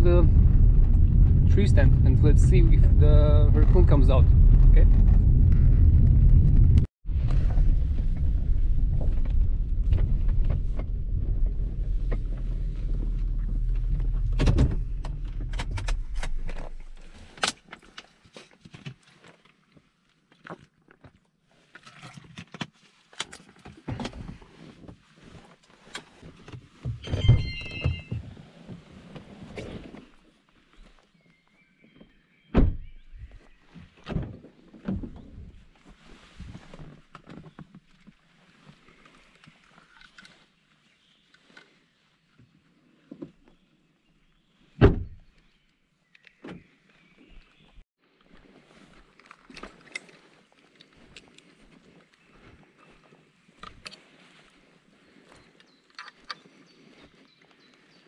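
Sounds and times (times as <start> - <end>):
truck rumble on gravel: 0.0 - 17.3.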